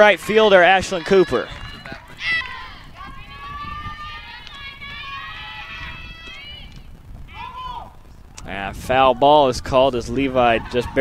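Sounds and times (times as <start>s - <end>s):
high voices calling and cheering: 0.0s - 11.0s.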